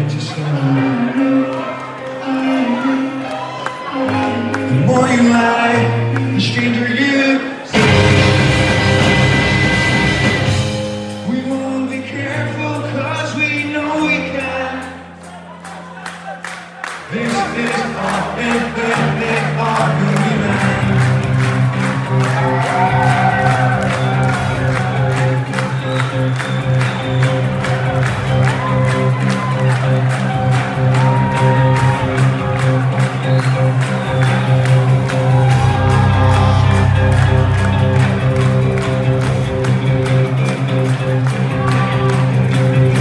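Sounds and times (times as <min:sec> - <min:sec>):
rock band playing live: 0:03.6 - 0:15.4, 0:16.0 - 0:43.0.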